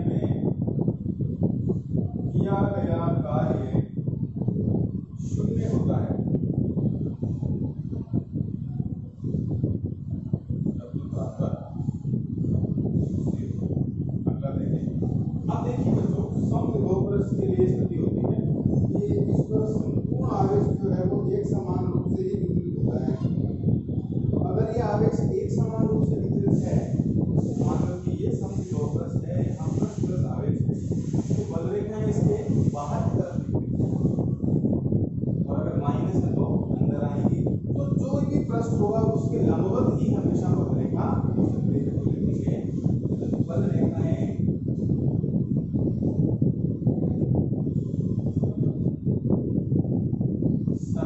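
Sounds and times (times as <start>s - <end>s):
low rumbling wind noise: 0.0s - 51.0s
man lecturing: 2.3s - 3.9s, 5.2s - 6.2s, 10.8s - 11.9s, 14.3s - 23.3s, 24.4s - 33.9s, 35.5s - 42.7s, 43.3s - 44.4s.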